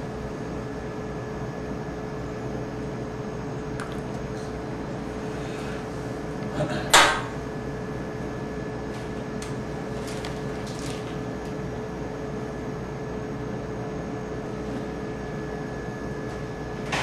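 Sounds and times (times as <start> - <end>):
steady equipment hum: 0.0 - 17.0.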